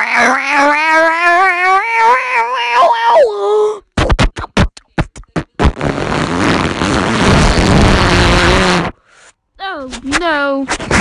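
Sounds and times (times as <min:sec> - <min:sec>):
rough noise burst: 0:05.6 - 0:09.1.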